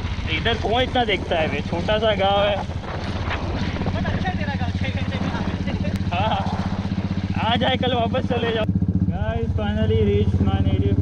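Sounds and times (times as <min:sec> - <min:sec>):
motorcycle engine thumping: 0:00.0 - 0:11.0.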